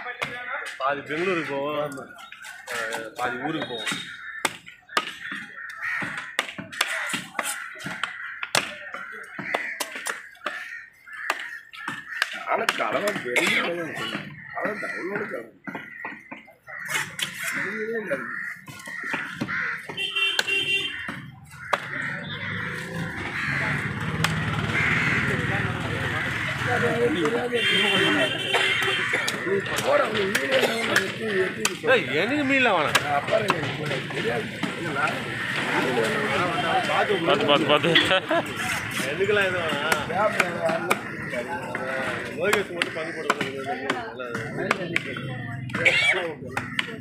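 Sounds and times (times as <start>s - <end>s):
background hubbub: 0.0s - 47.0s
voices talking: 0.0s - 47.0s
cleaver chopping fish on wood: 3.8s - 14.4s, 18.5s - 22.5s, 28.7s - 31.8s, 32.8s - 35.2s, 39.6s - 45.8s, 46.5s - 47.0s.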